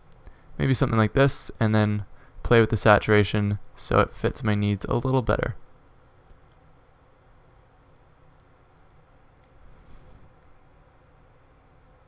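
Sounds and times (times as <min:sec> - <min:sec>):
computer mouse clicks: 0:09.4 - 0:09.6.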